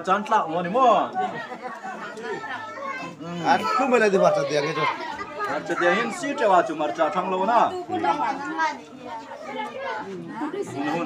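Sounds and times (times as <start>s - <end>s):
close talk: 0.0s - 11.0s
indistinct chatter: 0.0s - 11.0s.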